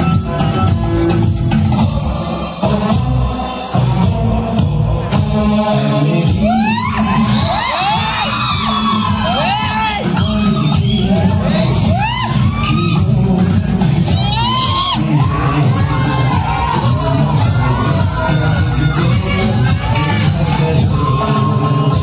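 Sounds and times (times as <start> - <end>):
dance music over loudspeaker: 0.0 - 22.0
children cheering and whooping: 6.4 - 13.2, 14.0 - 22.0.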